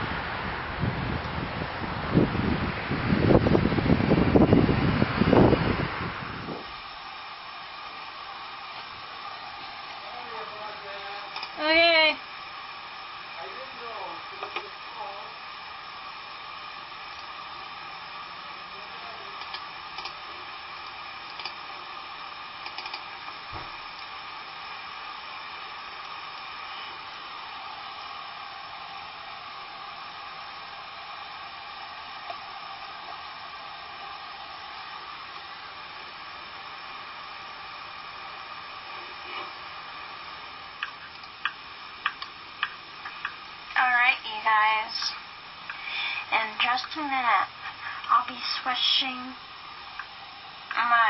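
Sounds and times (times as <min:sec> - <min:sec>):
small fan whirring hiss: 0:00.0 - 0:51.0.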